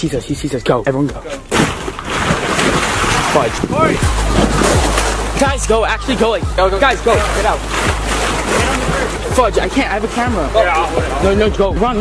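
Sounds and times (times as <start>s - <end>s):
man shouting: 10.5s - 11.2s.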